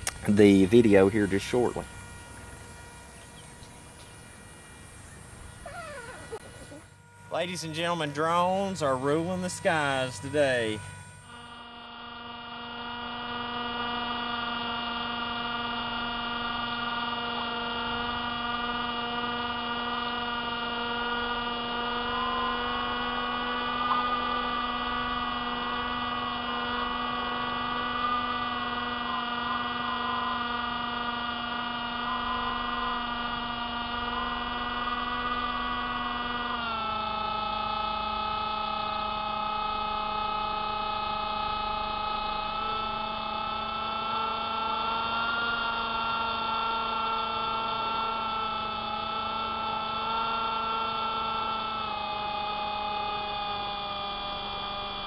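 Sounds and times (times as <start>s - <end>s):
electric motor and propeller whining: 0.0s - 55.0s.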